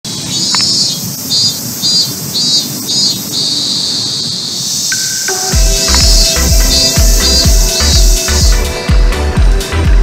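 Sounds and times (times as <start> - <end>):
cicadas buzzing: 0.1 - 9.4.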